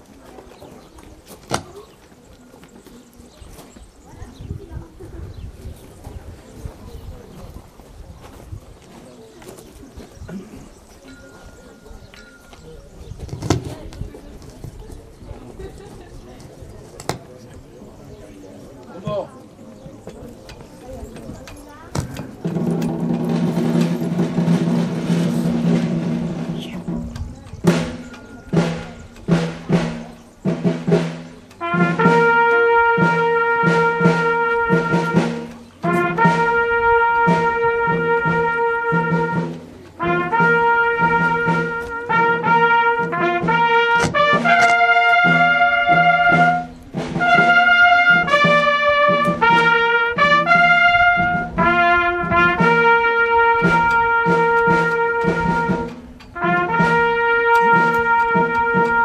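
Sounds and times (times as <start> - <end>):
drum strokes: 21.9 - 59.0
low held brass notes: 27.7 - 59.0
long held trumpet notes: 31.5 - 59.0.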